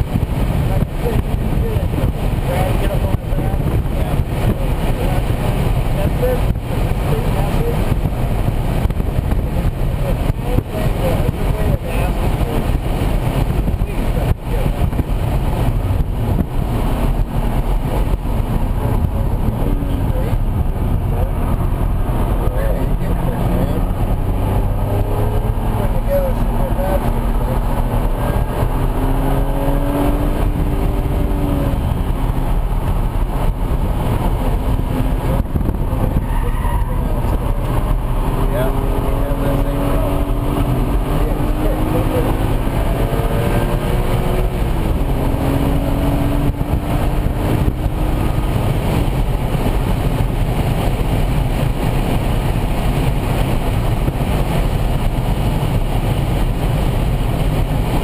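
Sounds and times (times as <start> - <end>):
car engine revving: 0.0 - 58.0
road and wind noise: 0.0 - 58.0.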